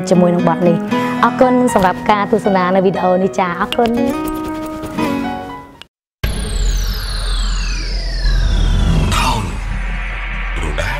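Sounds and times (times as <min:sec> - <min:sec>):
deep steady rumble: 0:06.3 - 0:10.9
high whistling gliding tones: 0:06.4 - 0:10.9.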